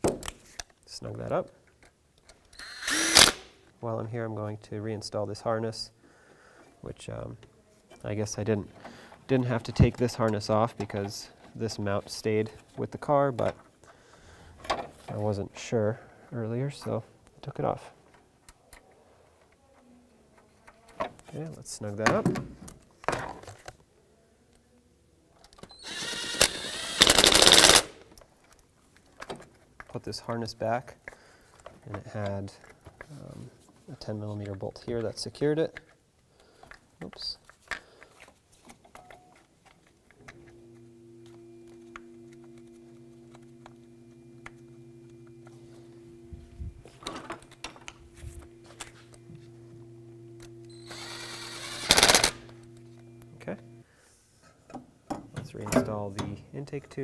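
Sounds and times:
impact wrench whirring and hammering: 0:02.5 - 0:03.6, 0:25.7 - 0:28.0, 0:40.3 - 0:53.8
steady low hum: 0:40.2 - 0:53.9
power tool rattling bolt in: 0:50.8 - 0:52.4.

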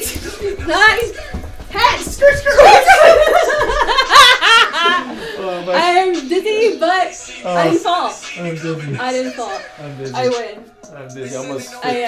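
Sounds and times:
woman laughing loudly: 0:02.6 - 0:05.1.

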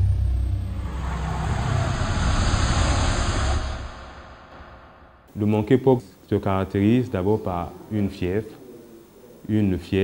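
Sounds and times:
deep rumble with rushing noise: 0:00.0 - 0:05.3.

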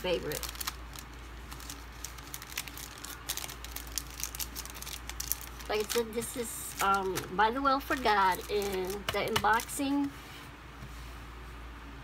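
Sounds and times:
plastic packaging crinkling: 0:00.0 - 0:10.0
steady low hum: 0:00.0 - 0:12.0.

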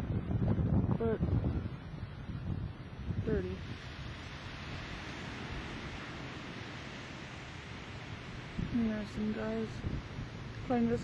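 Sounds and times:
surf breaking on beach: 0:00.0 - 0:11.0
wind rumbling on microphone: 0:00.0 - 0:11.0.

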